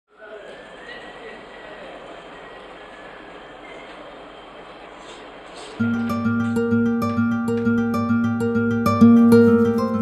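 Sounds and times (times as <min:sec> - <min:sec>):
mechanical hum and hiss: 0:00.1 - 0:06.7
plucked guitar music: 0:05.8 - 0:10.0.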